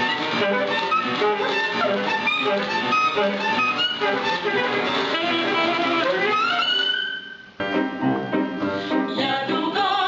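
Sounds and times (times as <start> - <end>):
saxophone: 0.0 - 9.2
music: 0.0 - 10.0
piano: 0.0 - 10.0.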